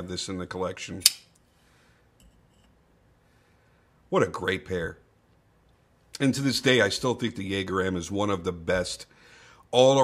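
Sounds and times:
metallic knife click: 0:01.0 - 0:01.4.

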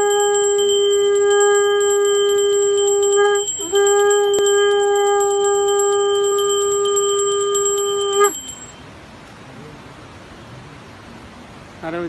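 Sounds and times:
held ritual instrument tone: 0:00.0 - 0:08.8.

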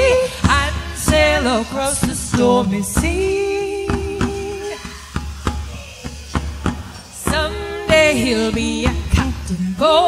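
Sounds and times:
folk song singing: 0:00.0 - 0:05.0, 0:05.7 - 0:10.0
sharp percussion hits: 0:00.0 - 0:10.0.

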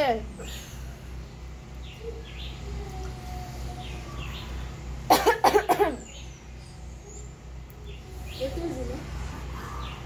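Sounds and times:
person coughing harshly: 0:05.1 - 0:06.1.

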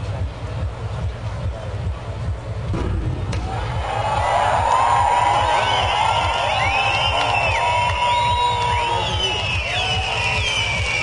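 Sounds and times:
psytrance dance music: 0:00.0 - 0:02.7, 0:03.4 - 0:11.0
crowd cheering and whooping: 0:03.4 - 0:11.0.

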